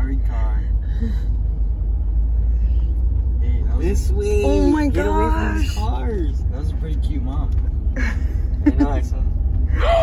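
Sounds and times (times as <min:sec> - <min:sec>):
car engine and tyres rumbling: 0:00.0 - 0:10.0.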